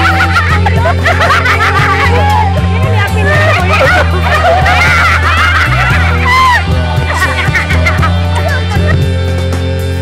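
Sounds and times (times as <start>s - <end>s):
young women laughing: 0.0s - 9.1s
pop music with bass line: 0.0s - 10.0s.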